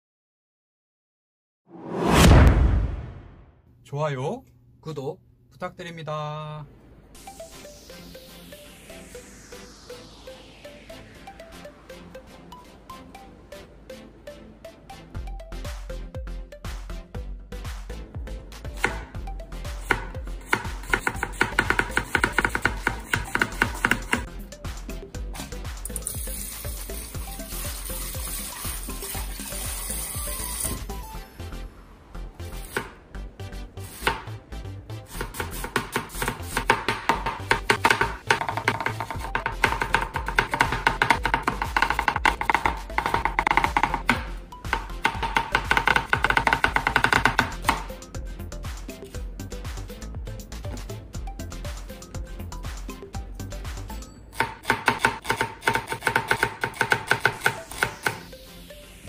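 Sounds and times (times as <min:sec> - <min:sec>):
faint background music: 0:03.8 - 0:59.0
knife chopping cabbage on board: 0:19.8 - 0:24.3, 0:35.1 - 0:47.9, 0:54.4 - 0:58.2.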